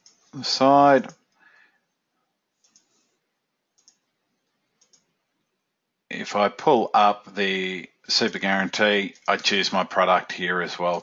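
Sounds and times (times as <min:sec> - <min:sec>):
computer mouse clicks: 0:00.0 - 0:00.4, 0:02.6 - 0:03.1, 0:03.8 - 0:04.1, 0:04.7 - 0:05.2, 0:09.1 - 0:09.6.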